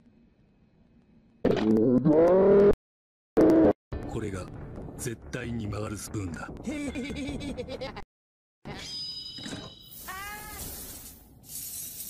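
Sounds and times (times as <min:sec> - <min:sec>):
hissing spray-like rush: 0:10.5 - 0:12.0.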